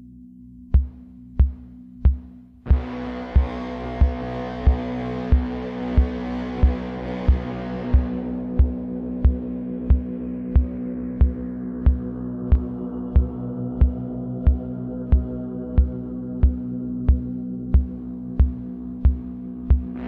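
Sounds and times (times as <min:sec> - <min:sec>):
low synth drone: 0:00.0 - 0:20.0.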